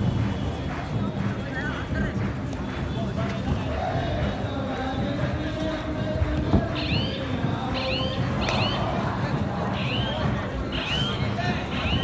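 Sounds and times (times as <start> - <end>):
murmur of background noise: 0.0 - 12.0.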